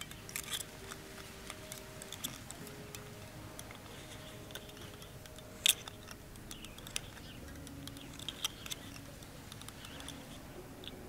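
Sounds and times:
wire and tubing clicking: 0.0 - 11.0.

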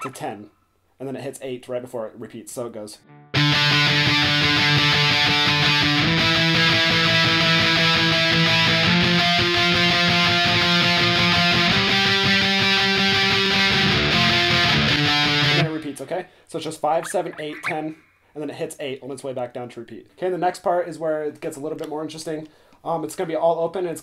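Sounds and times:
electric guitar strumming chords: 3.0 - 15.9.

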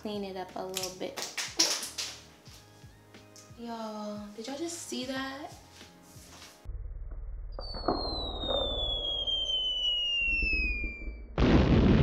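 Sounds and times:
loud explosion: 6.7 - 12.0
falling whistle: 7.6 - 11.4.

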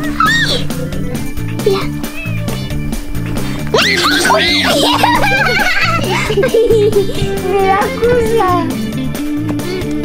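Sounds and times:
background music: 0.0 - 10.0
kitten meowing: 1.9 - 2.8.

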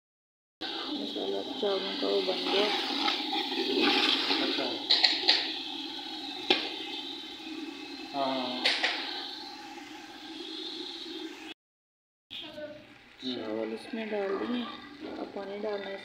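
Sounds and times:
masala sizzling in oil: 0.6 - 11.6, 12.4 - 16.0.

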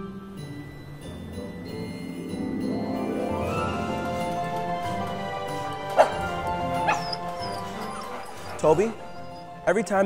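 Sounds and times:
orchestral background music: 0.0 - 10.0
dog barking: 5.9 - 9.5
dog yipping: 5.9 - 9.6.

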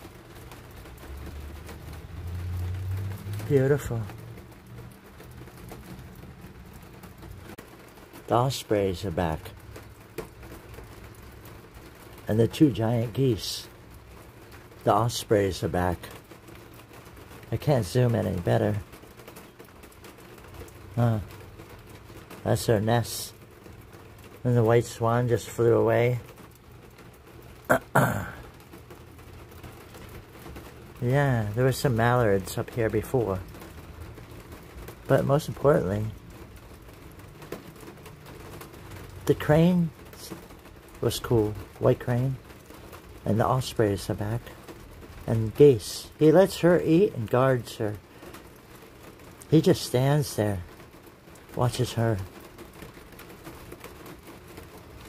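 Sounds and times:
faint steady background noise: 0.0 - 55.0.

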